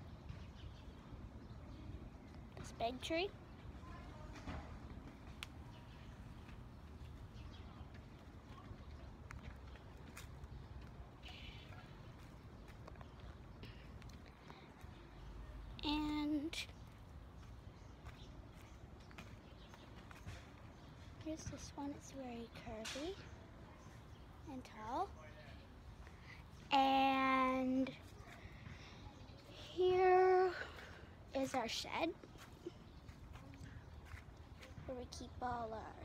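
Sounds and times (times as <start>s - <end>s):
faint footsteps: 2.2s - 23.3s, 27.7s - 35.9s
child speaking: 2.6s - 4.3s, 15.8s - 16.7s, 24.5s - 25.1s, 26.7s - 28.0s, 29.5s - 32.2s, 34.8s - 36.0s.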